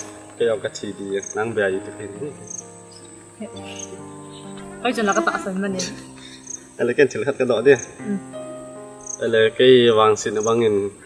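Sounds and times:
music with long held notes: 0:00.0 - 0:10.9
cricket chirping: 0:00.0 - 0:11.0.

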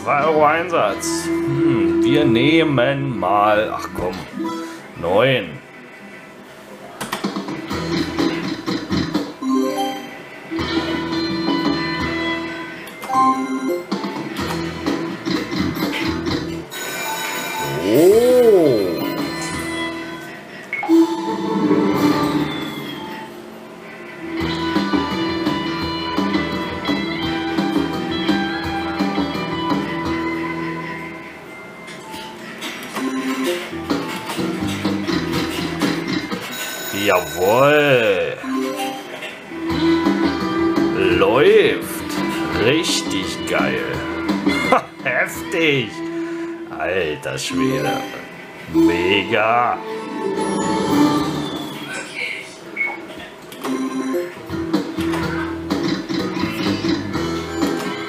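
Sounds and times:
slot machine jingles and chimes: 0:09.4 - 0:14.8, 0:16.7 - 0:18.1, 0:20.8 - 0:23.4, 0:33.0 - 0:33.8, 0:36.4 - 0:39.2, 0:47.5 - 0:51.9, 0:53.7 - 0:54.4.

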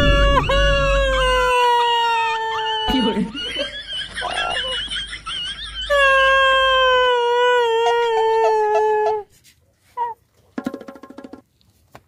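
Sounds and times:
man wailing in pain: 0:00.0 - 0:03.3.

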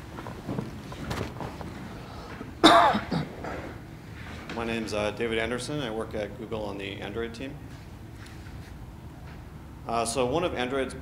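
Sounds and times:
low room murmur: 0:00.0 - 0:11.0
person clearing throat: 0:02.6 - 0:03.8.

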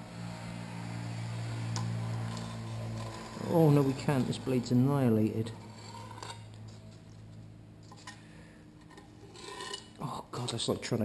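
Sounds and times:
knife scraping tint film on glass: 0:01.8 - 0:04.7, 0:05.5 - 0:07.1, 0:08.8 - 0:10.0.

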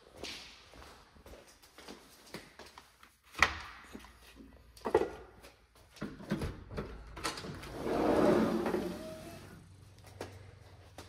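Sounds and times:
sliding glass door rumbling open: 0:07.5 - 0:09.6.

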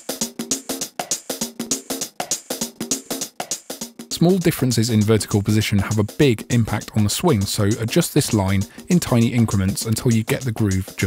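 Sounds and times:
drum machine loop: 0:00.0 - 0:11.0.

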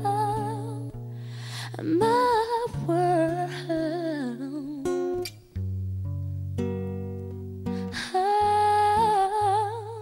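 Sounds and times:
woman singing: 0:00.0 - 0:05.2, 0:07.8 - 0:10.0
plucked acoustic guitar: 0:00.0 - 0:10.0.

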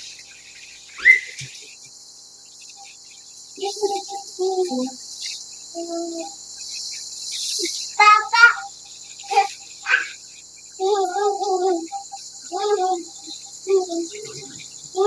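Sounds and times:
high-pitched hiss: 0:00.0 - 0:15.0.

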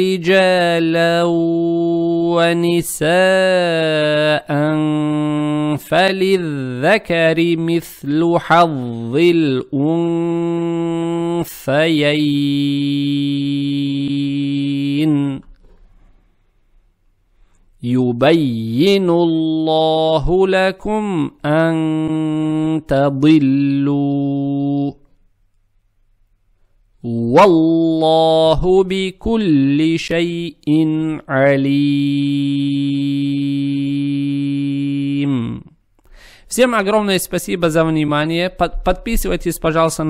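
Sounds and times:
man reciting a long sung note: 0:00.0 - 0:15.6, 0:17.8 - 0:25.1, 0:27.0 - 0:35.8, 0:36.5 - 0:40.0.

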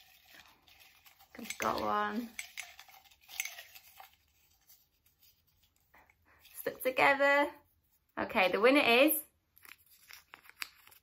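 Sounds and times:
paper slip crinkling: 0:00.0 - 0:02.0, 0:02.6 - 0:06.6, 0:09.5 - 0:11.0
woman speaking: 0:01.4 - 0:02.4, 0:06.6 - 0:07.6, 0:08.2 - 0:09.3.

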